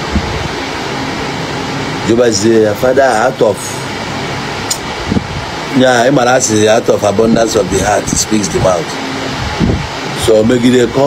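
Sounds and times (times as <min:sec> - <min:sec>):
steady background hiss: 0:00.0 - 0:11.0
man speaking: 0:02.0 - 0:03.9, 0:05.7 - 0:09.0, 0:10.2 - 0:11.0.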